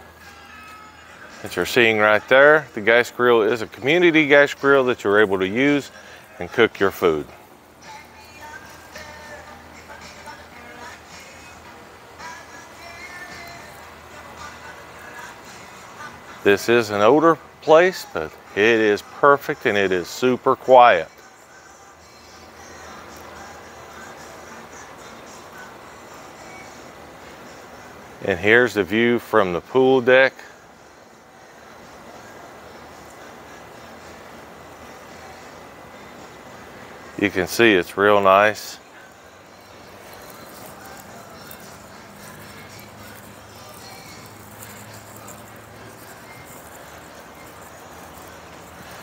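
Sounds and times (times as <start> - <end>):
distant traffic hum: 31.6 - 49.0.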